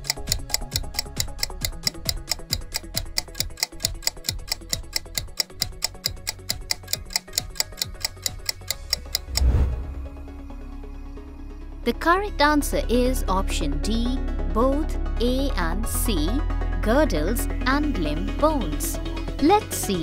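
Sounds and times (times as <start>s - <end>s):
countdown timer ticking: 0.0s - 9.7s, 16.9s - 20.0s
low music bed: 0.0s - 20.0s.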